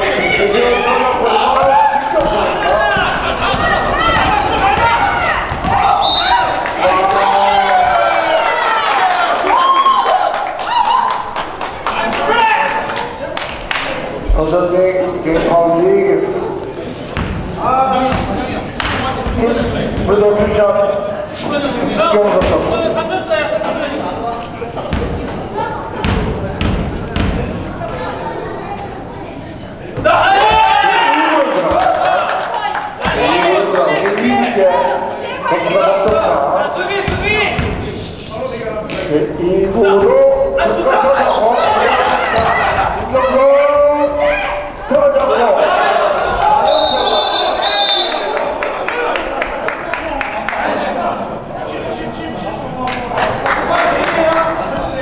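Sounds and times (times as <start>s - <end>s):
men's voices: 0.0s - 8.4s, 33.0s - 44.2s
players calling out: 0.0s - 13.3s, 39.7s - 51.5s.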